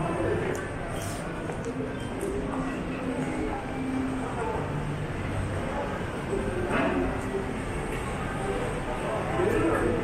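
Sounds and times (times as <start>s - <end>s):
low rumble of shopping concourse: 0.0s - 10.0s.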